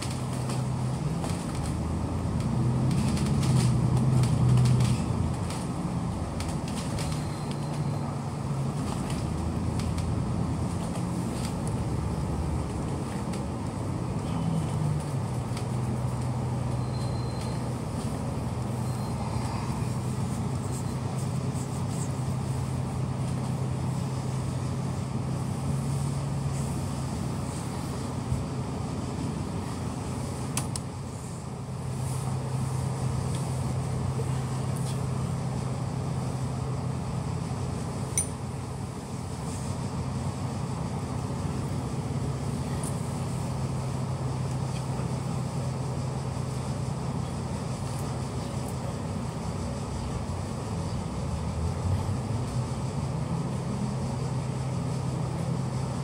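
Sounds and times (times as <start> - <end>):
bus engine humming: 0.0 - 56.0.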